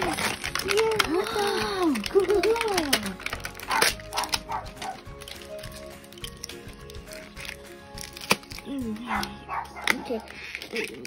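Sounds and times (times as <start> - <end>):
plastic tray crinkling and clicking: 0.0 - 11.0
soft background music: 0.0 - 11.0.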